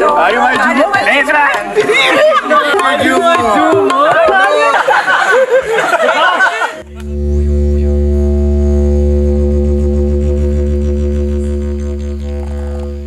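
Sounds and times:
didgeridoo drone: 6.8s - 13.0s.

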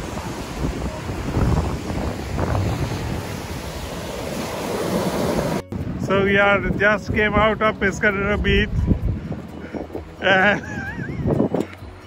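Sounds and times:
surf breaking on beach: 0.0s - 7.0s
wind gusting on microphone: 0.0s - 12.0s.

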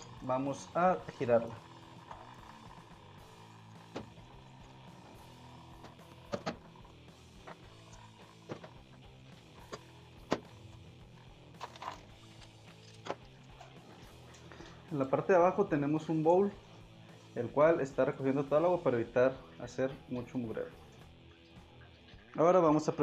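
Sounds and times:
soft guitar music: 0.0s - 23.0s.

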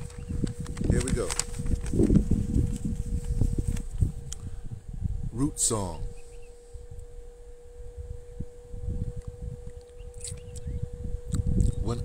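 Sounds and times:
faint steady hum: 0.0s - 12.0s
wind buffeting microphone: 0.0s - 12.0s.

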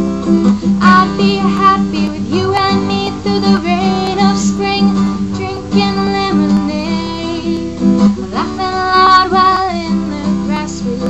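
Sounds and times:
strummed acoustic guitar: 0.0s - 11.0s
woman singing country-folk song: 0.4s - 11.0s.

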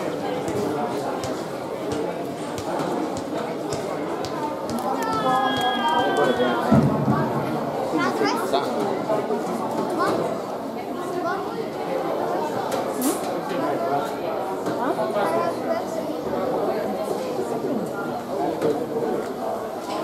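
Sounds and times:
spectators chatting: 0.0s - 20.0s.

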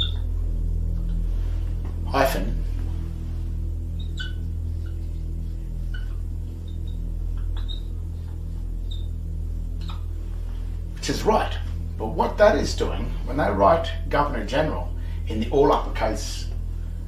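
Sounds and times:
steady low hum: 0.0s - 17.0s
faint high chirps: 3.5s - 10.2s.

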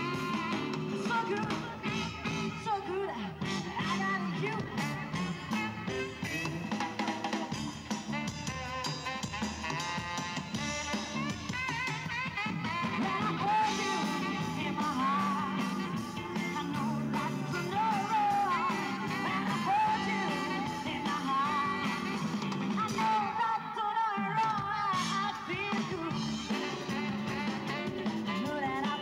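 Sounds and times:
person singing lead vocal: 0.0s - 6.4s, 12.7s - 29.0s
drum kit: 0.0s - 29.0s
electric guitar: 0.0s - 29.0s.

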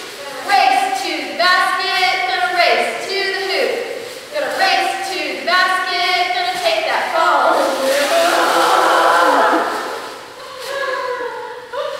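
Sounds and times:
voices shouting a cheer chant: 4.6s - 10.2s.

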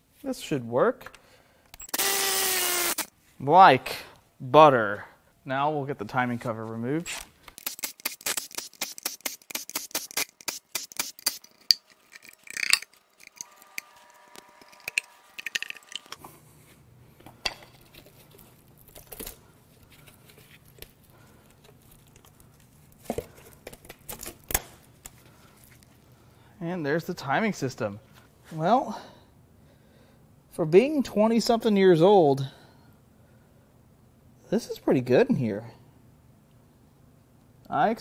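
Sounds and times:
small motor whining: 1.8s - 3.1s, 13.0s - 16.2s
rapid clicking of tool: 7.6s - 16.2s
metal scraping: 11.2s - 16.2s.

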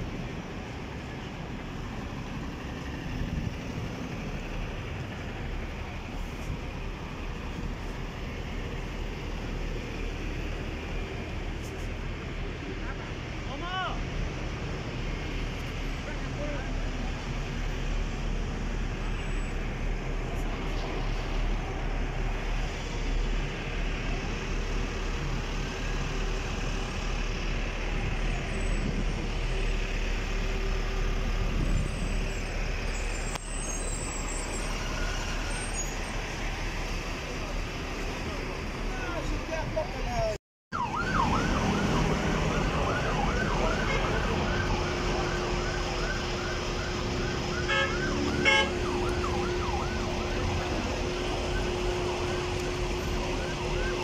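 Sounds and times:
road noise: 0.0s - 54.0s
emergency siren yelping: 40.7s - 54.0s.

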